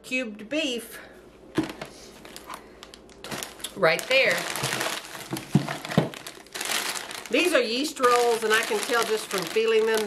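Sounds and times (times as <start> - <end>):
plastic bag crinkling: 1.6 - 10.0.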